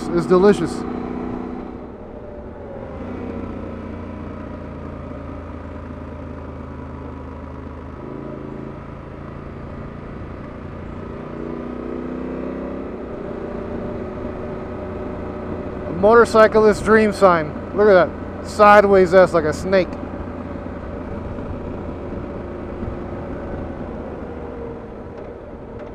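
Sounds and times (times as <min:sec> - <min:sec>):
motorcycle engine running: 0:00.0 - 0:25.9
rush of riding wind: 0:00.0 - 0:25.9.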